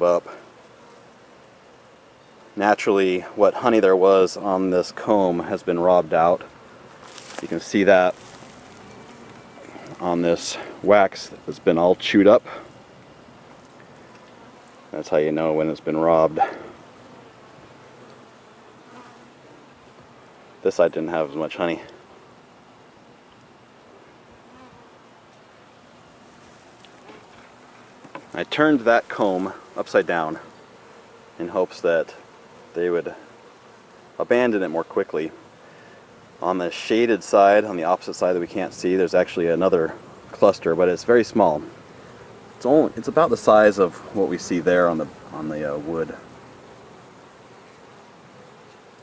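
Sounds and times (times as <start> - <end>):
honey bees buzzing: 0.0 - 49.0.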